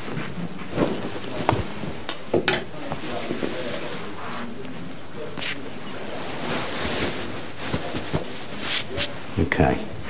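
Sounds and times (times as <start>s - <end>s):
jacket cloth rustling: 0.0s - 4.6s, 5.2s - 10.0s.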